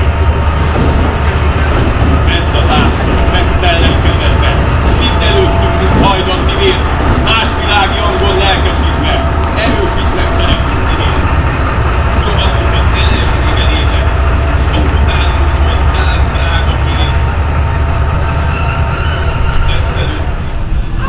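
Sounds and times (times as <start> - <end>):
diesel locomotive idling: 0.0 - 21.0
people's voices: 0.0 - 21.0.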